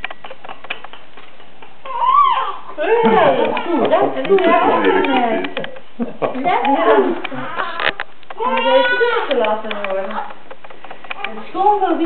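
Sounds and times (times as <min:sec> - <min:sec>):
newborn baby crying: 0:01.8 - 0:03.9, 0:06.9 - 0:09.6.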